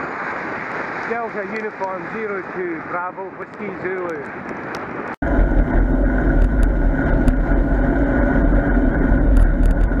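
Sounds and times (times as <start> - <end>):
wind rumbling on microphone: 0.0 - 10.0
steady hum: 5.2 - 10.0.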